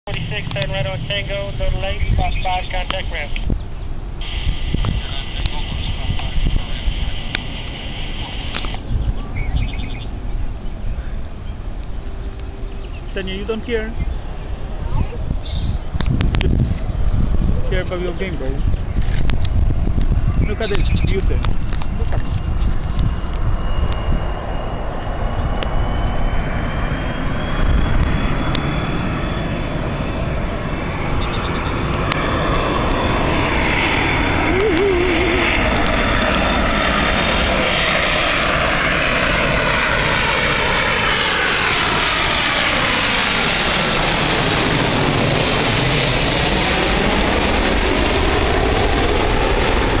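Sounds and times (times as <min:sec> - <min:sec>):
jet airliner passing overhead: 0:00.0 - 0:50.0.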